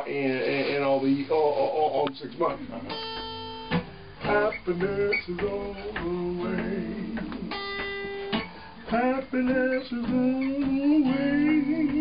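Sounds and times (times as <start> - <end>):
guitar plucked and strummed: 0.0 - 12.0
person singing: 4.2 - 7.8, 8.8 - 12.0.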